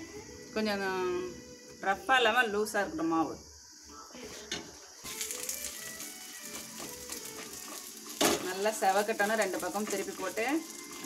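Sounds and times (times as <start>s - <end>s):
food sizzling in oil: 4.3s - 11.0s.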